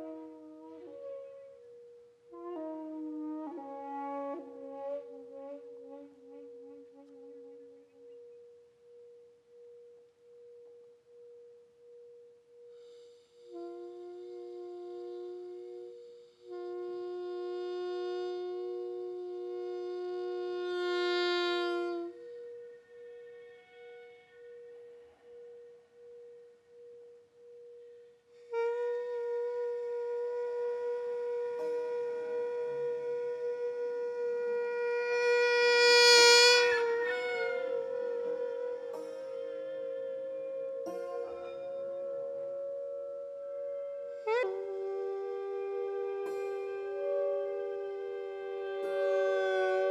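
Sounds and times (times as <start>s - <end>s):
reedy wind instrument note: 0.0s - 49.9s.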